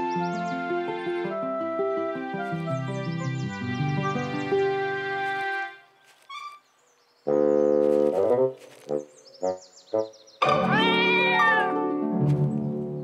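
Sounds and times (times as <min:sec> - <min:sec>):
music: 0:00.0 - 0:06.6, 0:07.3 - 0:13.0
cartoon cat yowl: 0:10.6 - 0:11.9.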